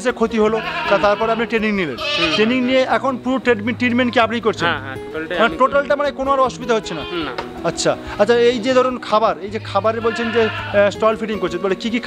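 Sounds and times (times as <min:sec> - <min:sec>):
goat kids bleating: 0:00.4 - 0:02.9, 0:06.7 - 0:07.5, 0:09.4 - 0:10.9.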